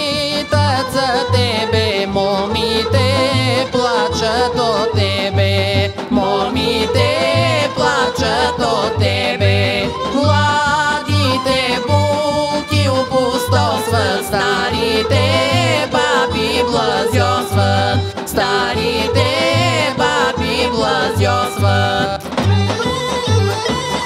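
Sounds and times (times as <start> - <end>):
woman singing folk song: 0.0 - 22.8
instrumental backing with bass beat: 0.0 - 24.0.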